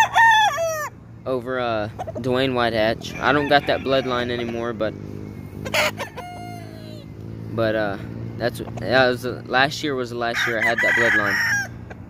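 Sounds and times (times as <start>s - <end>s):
rooster crowing: 0.0s - 1.0s, 3.0s - 4.6s, 5.6s - 7.1s, 10.3s - 11.9s.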